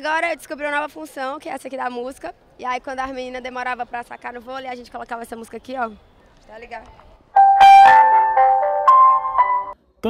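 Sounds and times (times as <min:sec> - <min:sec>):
megaphone electronic melody: 0:07.4 - 0:09.8.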